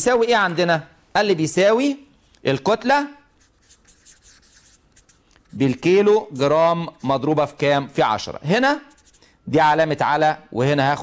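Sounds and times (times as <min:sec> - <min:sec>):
marker scratching on paper: 0:03.2 - 0:07.6, 0:08.7 - 0:09.3.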